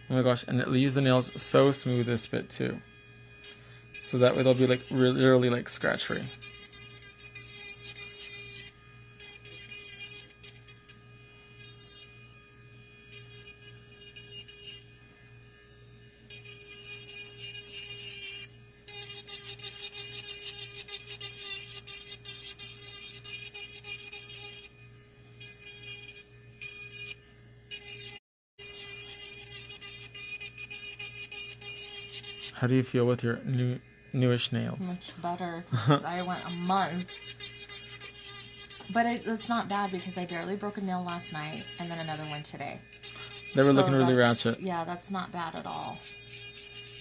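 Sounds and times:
motor hum: 0.0s - 47.0s
nail file scratchy grinding: 0.6s - 2.4s, 3.4s - 15.0s, 16.3s - 24.8s, 25.4s - 32.8s, 35.9s - 47.0s.

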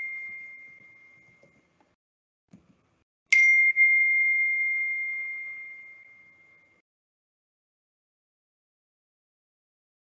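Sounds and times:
high ding: 0.0s - 1.5s, 3.3s - 6.8s.

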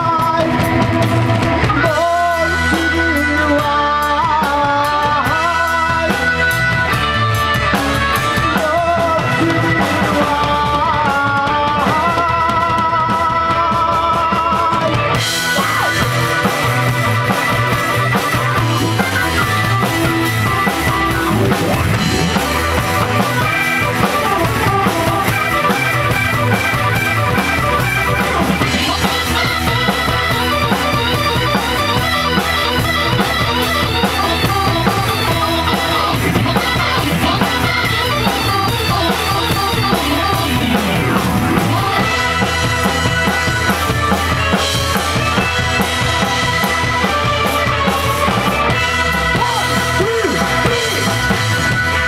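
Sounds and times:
electric guitar: 0.0s - 52.0s
live rock band playing: 0.0s - 52.0s.

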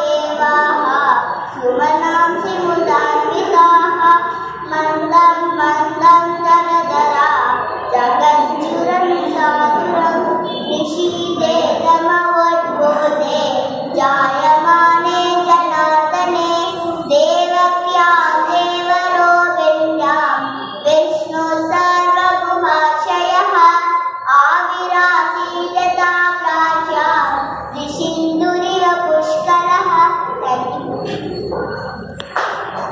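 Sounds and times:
girl chanting melodically: 0.0s - 31.3s.

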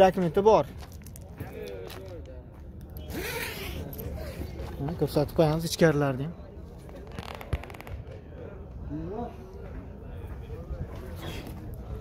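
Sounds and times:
faint voices: 1.2s - 12.0s.

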